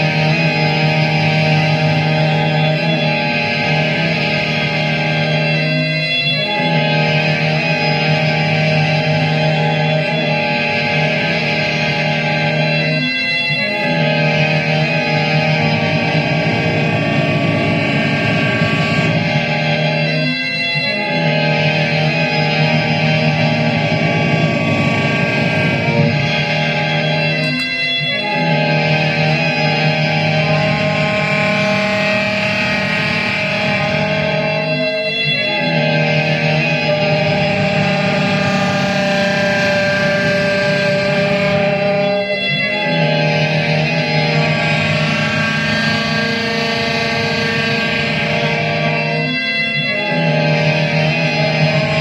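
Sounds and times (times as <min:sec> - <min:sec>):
saxophone drone through effects: 0:00.0 - 0:52.0.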